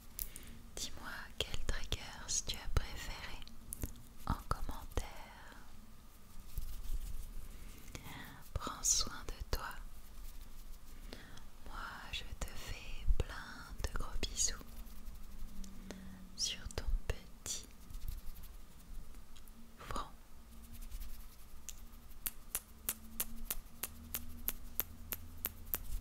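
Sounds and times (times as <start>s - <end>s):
person whispering into microphone: 0.8s - 5.7s, 7.8s - 9.9s, 11.2s - 17.8s, 19.8s - 21.0s.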